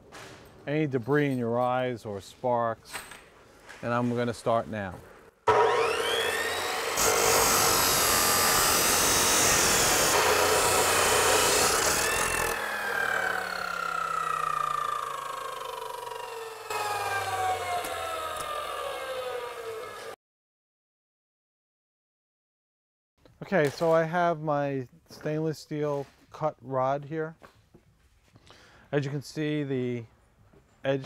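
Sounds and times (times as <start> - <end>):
chop saw motor whine: 5.4 - 20.2
cut-off wheel grinding metal rod: 5.5 - 20.2.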